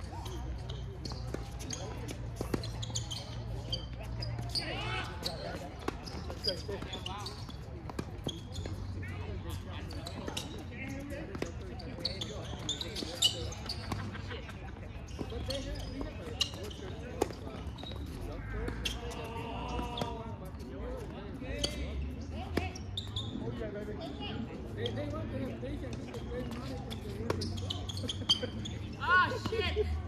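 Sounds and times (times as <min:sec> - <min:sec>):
tennis balls bouncing on hard court: 0:00.2 - 0:04.6, 0:05.4 - 0:09.1, 0:09.8 - 0:14.3, 0:15.0 - 0:20.2.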